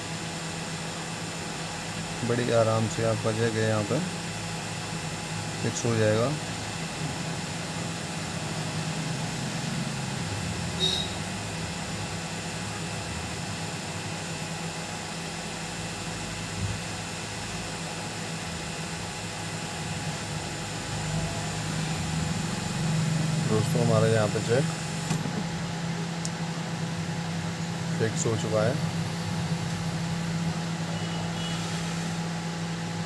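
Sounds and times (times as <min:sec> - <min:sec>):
hot air gun blowing: 0:31.0 - 0:32.2.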